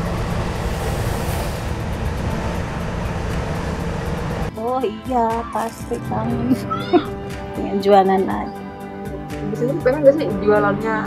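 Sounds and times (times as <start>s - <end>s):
train rumbling past: 0.0s - 4.8s
background music: 0.0s - 11.0s.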